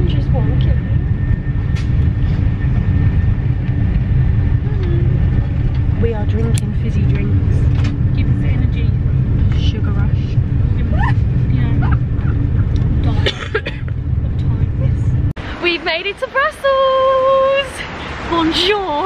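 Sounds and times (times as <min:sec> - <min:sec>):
constant hum: 0:00.0 - 0:19.0
train carriage rumble: 0:00.0 - 0:19.0.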